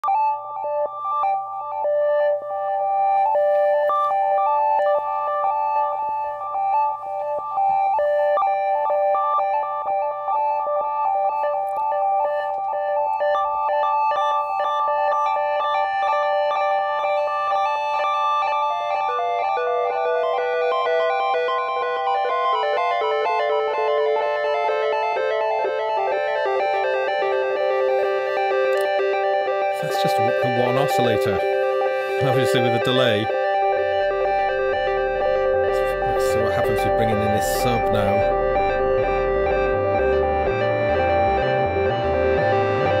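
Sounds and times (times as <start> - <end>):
low busy synthesizer run: 0.0 - 43.0
synthesizer sequenced pattern with echoes: 0.0 - 43.0.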